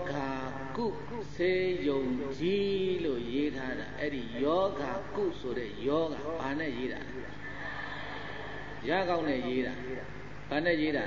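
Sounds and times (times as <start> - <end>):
faint high-pitched whine: 0.0 - 11.0
low electrical hum: 0.0 - 11.0.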